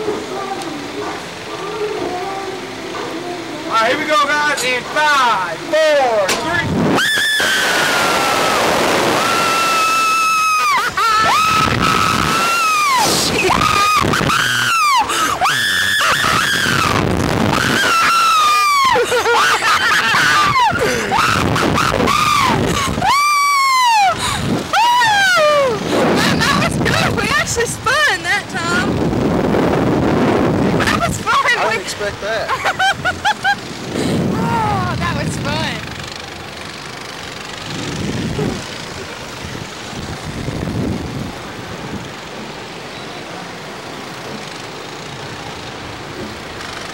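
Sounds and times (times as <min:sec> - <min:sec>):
people screaming: 0:06.9 - 0:28.2, 0:32.5 - 0:35.2
people gasping: 0:15.0 - 0:15.5, 0:20.2 - 0:21.2, 0:22.6 - 0:23.0, 0:24.0 - 0:24.7, 0:33.8 - 0:34.6.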